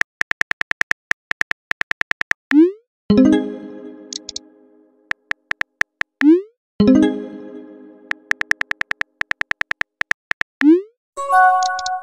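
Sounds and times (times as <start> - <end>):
message arrival chime: 3.1 - 4.6, 11.2 - 12.0
phone keyboard clicks: 4.1 - 4.4, 8.1 - 10.6.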